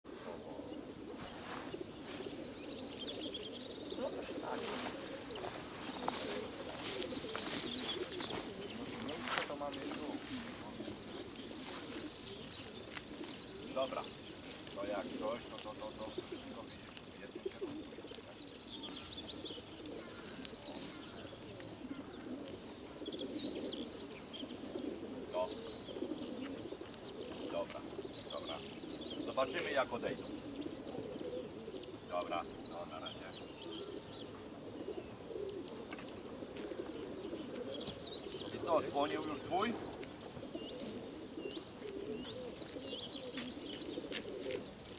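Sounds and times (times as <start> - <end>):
pigeons cooing: 0.1 - 44.9.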